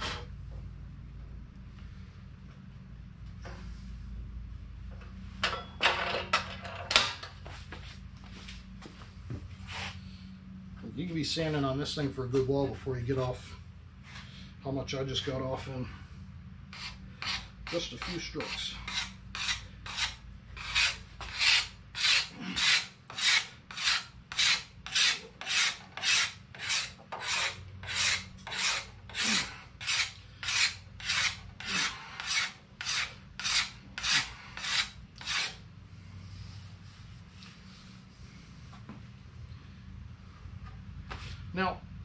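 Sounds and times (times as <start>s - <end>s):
steel scraper on wooden handle: 16.7s - 35.6s.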